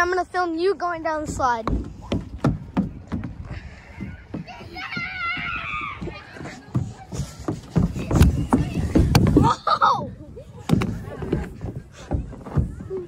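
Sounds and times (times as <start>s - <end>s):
child's running footsteps: 1.3s - 9.8s.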